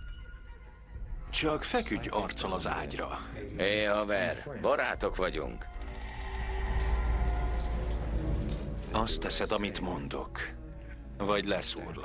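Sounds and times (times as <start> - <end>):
metal handcuffs clinking: 7.2 - 9.0.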